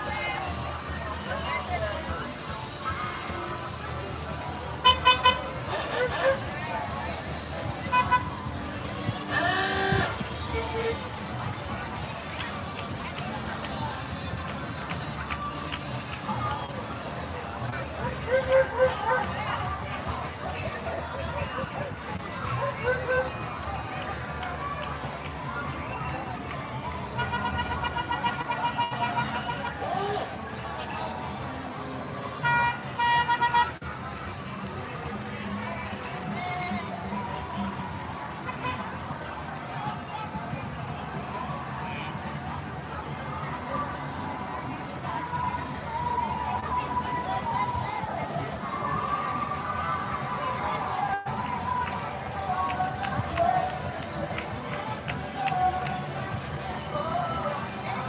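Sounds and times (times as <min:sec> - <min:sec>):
crowd chatter: 0:00.0 - 0:58.0
golf cart horn honking: 0:04.8 - 0:06.4, 0:09.3 - 0:11.0, 0:32.4 - 0:33.8.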